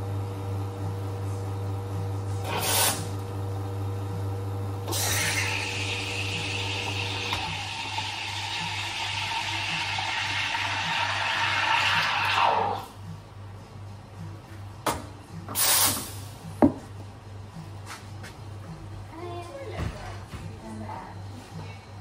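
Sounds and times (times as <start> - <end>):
low machine hum: 0.0 - 10.1.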